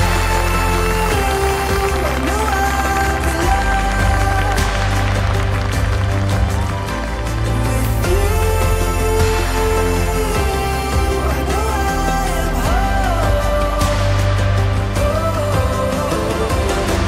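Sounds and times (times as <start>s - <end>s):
song with steady bass line: 0.0s - 17.0s.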